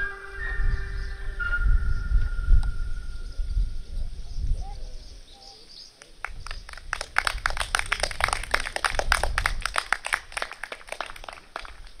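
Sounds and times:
people clapping: 6.0s - 12.0s.

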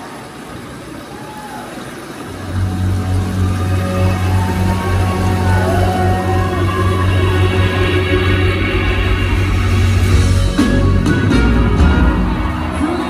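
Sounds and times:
crowd noise: 0.0s - 13.0s
deep sustained bass drone: 2.4s - 13.0s
live band playing: 2.5s - 13.0s.

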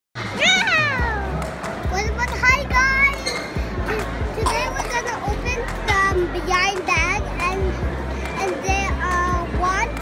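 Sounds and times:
background music with low bass: 0.2s - 10.0s
child talking: 0.4s - 10.0s.

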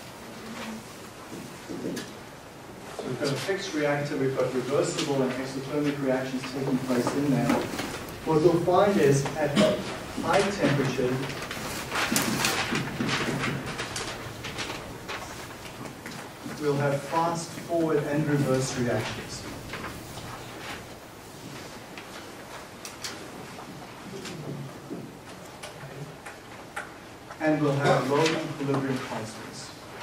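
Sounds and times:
lecture room noise: 0.0s - 30.0s.

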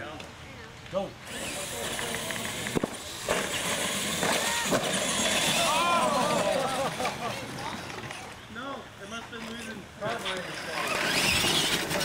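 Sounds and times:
people laughing and chattering: 0.0s - 12.0s
toy trucks whirring on dirt: 1.2s - 12.0s.

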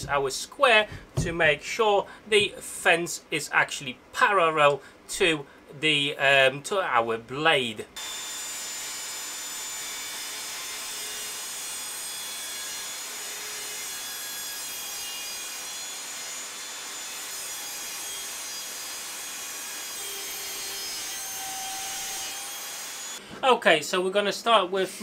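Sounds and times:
table saw cutting wood: 8.0s - 23.2s.

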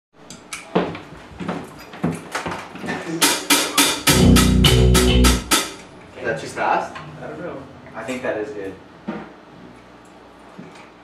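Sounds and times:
drum hits: 3.2s - 5.8s
electric guitar and bass chord: 4.0s - 5.6s.

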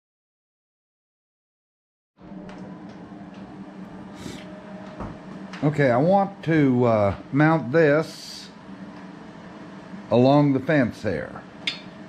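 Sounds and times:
low workshop hum: 2.2s - 12.0s.

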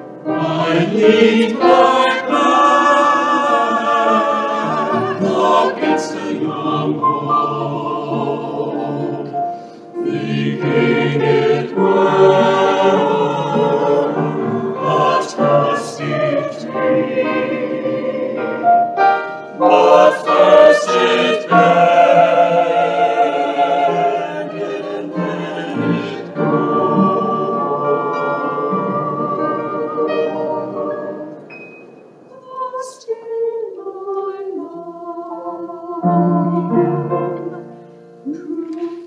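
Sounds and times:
choir singing slow song: 0.0s - 39.0s.

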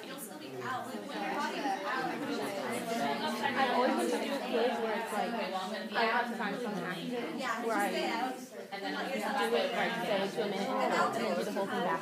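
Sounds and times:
several people talking at once: 0.0s - 12.0s.

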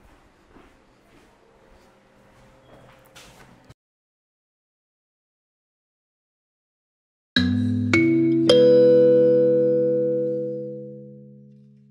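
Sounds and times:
jingle closing chord: 7.4s - 11.5s.

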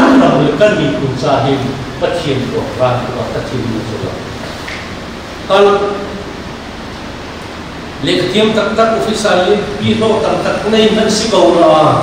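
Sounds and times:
background noise hiss: 0.0s - 12.0s.

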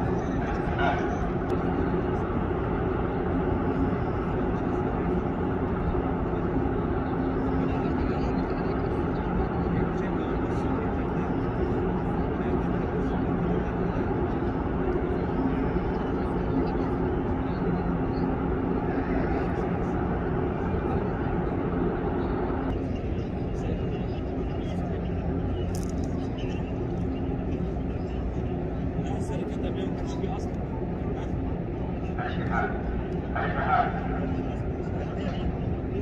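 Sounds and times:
indistinct crowd voices: 0.0s - 36.0s
low machinery hum: 0.0s - 36.0s.

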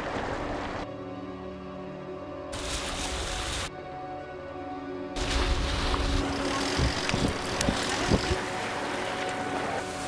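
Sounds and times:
sea water rushing: 0.0s - 0.9s, 5.2s - 10.0s
background music drone: 0.0s - 10.0s.

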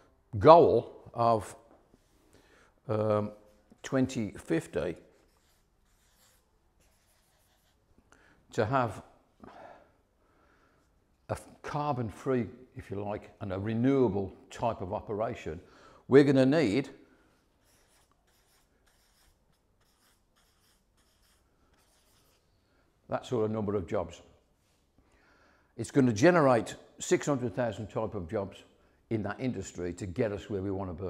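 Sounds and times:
marker pen on paper: 4.6s - 7.9s, 17.5s - 22.5s.

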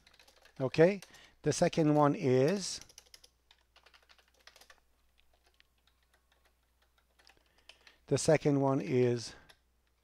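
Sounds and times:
faint keyboard typing: 0.0s - 10.0s.

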